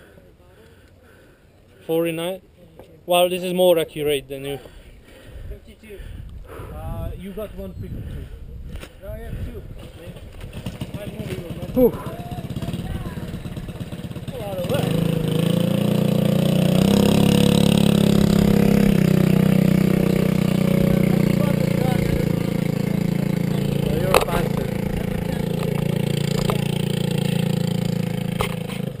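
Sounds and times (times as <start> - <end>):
kart engine idling: 9.8 - 29.0.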